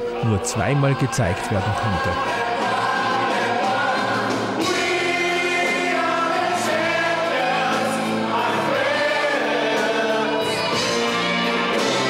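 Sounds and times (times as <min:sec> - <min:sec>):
lead singer singing: 0:00.0 - 0:10.6
choir singing: 0:00.0 - 0:12.0.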